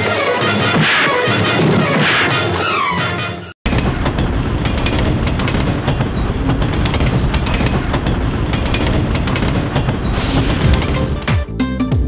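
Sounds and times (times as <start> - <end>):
loud steady rumble: 3.7 - 11.3
rapid clattering: 3.7 - 11.4.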